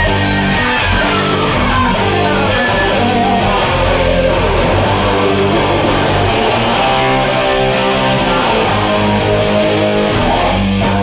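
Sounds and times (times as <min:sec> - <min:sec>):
electric guitar lead: 0:00.0 - 0:11.0
rock band backing: 0:00.0 - 0:11.0.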